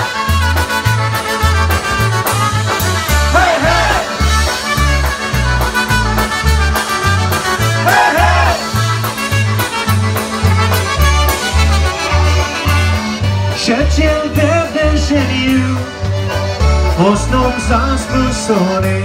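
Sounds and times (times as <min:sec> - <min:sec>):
trumpet: 0:00.0 - 0:13.8
concertina and accordion melody: 0:00.0 - 0:19.0
drums: 0:00.0 - 0:19.0
oom-pah bass line: 0:00.0 - 0:19.0.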